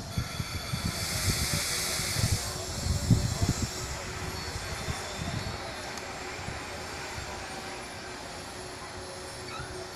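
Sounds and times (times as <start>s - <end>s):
steam locomotive hissing: 0.0s - 9.9s.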